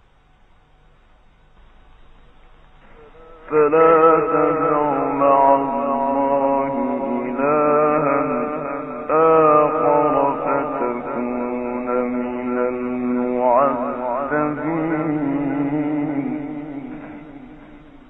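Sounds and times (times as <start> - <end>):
man reciting melodically: 2.9 - 18.0.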